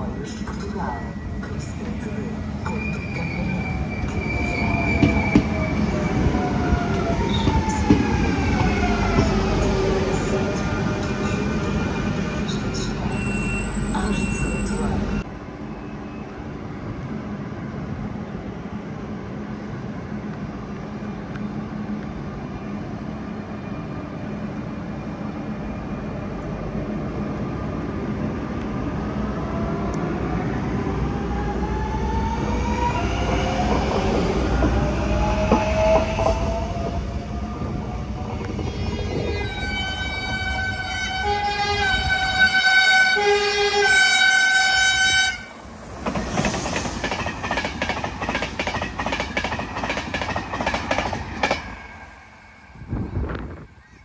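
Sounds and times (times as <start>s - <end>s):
train rumble with rising whine: 0.0s - 54.0s
train horn: 39.1s - 45.5s.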